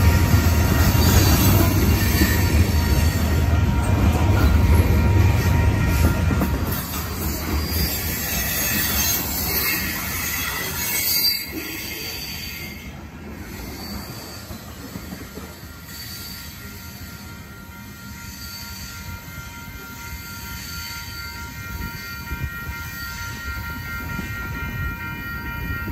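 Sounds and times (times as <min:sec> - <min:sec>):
freight train cars rolling: 0:00.0 - 0:25.9
train rumble: 0:00.0 - 0:25.9
high-pitched wheel squeal: 0:06.7 - 0:12.9, 0:13.5 - 0:14.8.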